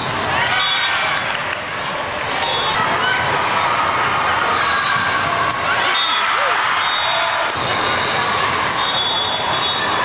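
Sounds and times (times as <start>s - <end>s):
court shoes squeaking: 4.8s - 10.0s.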